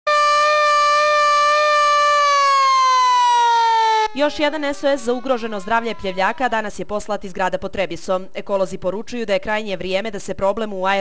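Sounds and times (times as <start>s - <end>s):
hand-cranked siren wailing: 0.1s - 7.1s.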